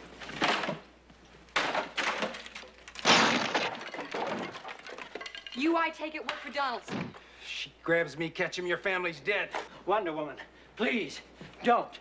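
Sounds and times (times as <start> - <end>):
wooden chair being smashed: 0.3 - 0.8, 1.5 - 5.7
loud crash: 3.0 - 4.8.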